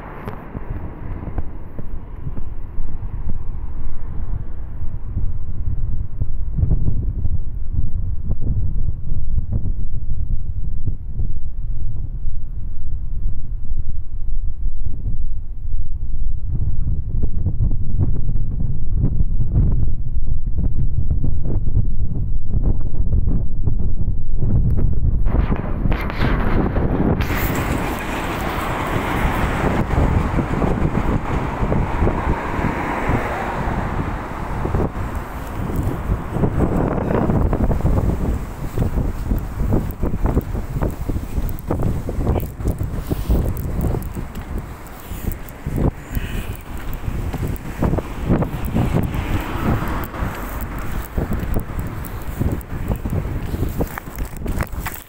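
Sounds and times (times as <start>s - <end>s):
broad rushing noise: 0.0s - 5.4s, 25.2s - 55.0s
wind buffeting microphone: 0.0s - 55.0s.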